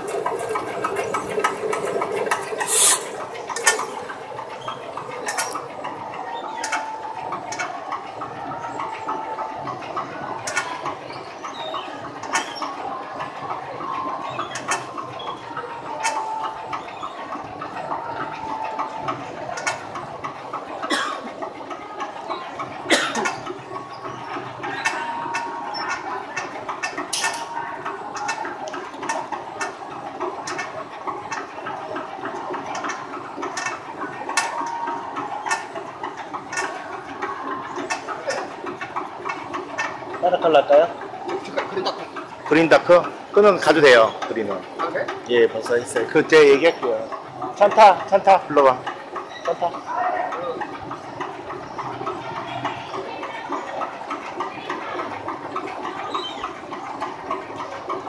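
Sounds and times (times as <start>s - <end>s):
fabric inspection machine running: 0.0s - 58.0s.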